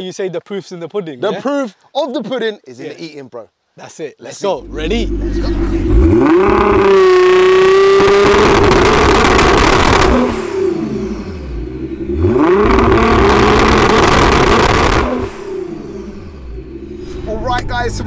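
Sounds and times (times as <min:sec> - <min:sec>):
car engine revving hard: 0:04.6 - 0:17.6.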